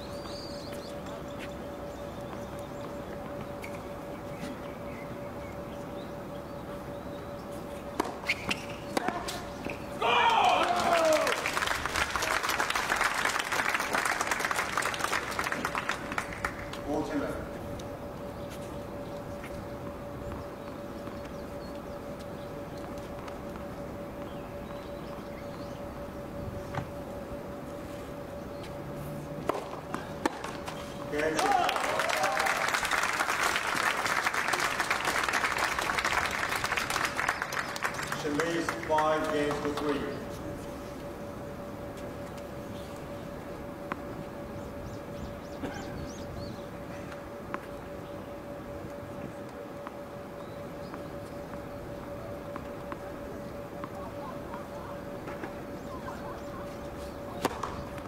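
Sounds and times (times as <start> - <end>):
loud shout: 10.0 - 11.4, 31.4 - 32.6
spectators clapping: 10.2 - 16.8, 31.2 - 40.0.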